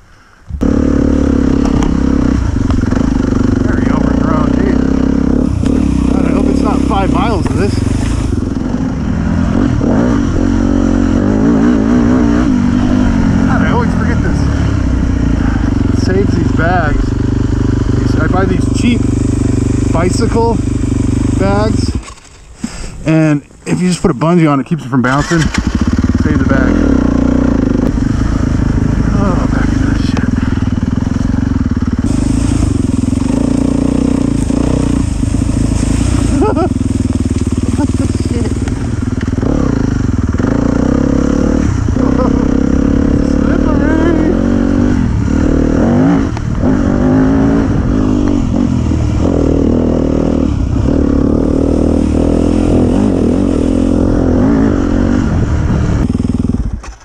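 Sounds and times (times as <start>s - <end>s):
dirt bike engine revving: 0.5s - 22.4s, 23.0s - 57.0s.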